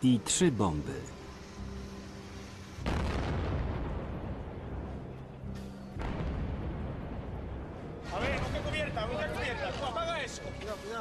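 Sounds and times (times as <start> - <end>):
bomb explosion with rumble: 2.8 - 4.9, 6.0 - 9.1.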